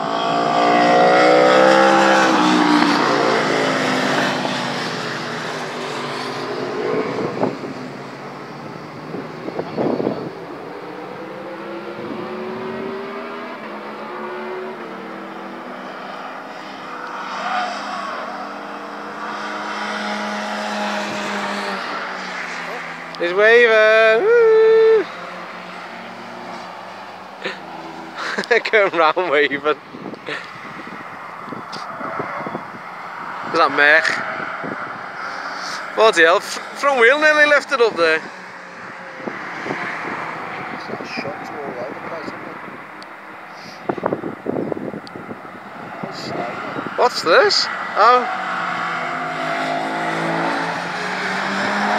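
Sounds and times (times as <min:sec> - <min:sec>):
race car engines accelerating: 0:00.0 - 0:51.9.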